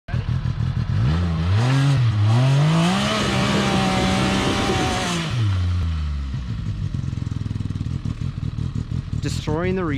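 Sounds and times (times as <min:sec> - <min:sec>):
engine revving under load: 0:00.3 - 0:09.4.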